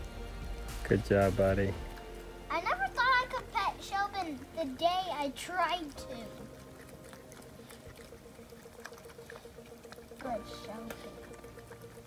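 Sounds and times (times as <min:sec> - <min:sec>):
piglets rooting in leaves: 0:00.0 - 0:12.0
rapidly pulsing hum: 0:01.7 - 0:12.0.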